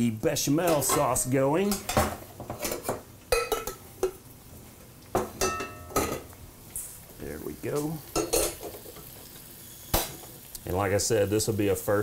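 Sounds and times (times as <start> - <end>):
metal saucepan clanking: 0.6 - 4.2, 5.2 - 6.3, 8.1 - 8.8.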